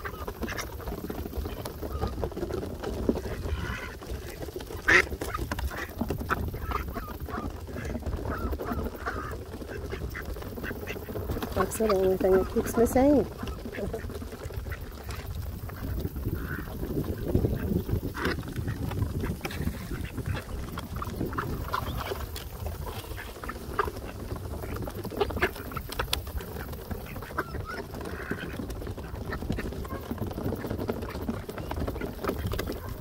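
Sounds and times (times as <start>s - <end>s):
bills pecking at wooden boards: 0.0s - 33.0s
ducks quacking: 0.0s - 33.0s.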